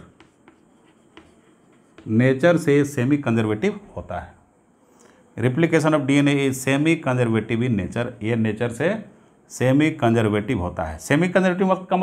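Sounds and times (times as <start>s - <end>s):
chalk scratching on blackboard: 0.0s - 2.7s
chalk tapping: 0.0s - 2.8s.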